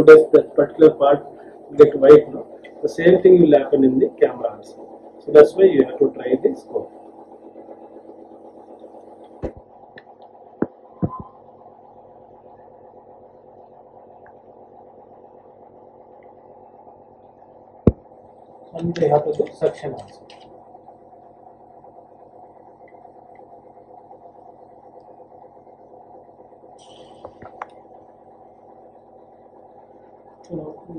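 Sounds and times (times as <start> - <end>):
pump electric hum: 0.0 - 30.9.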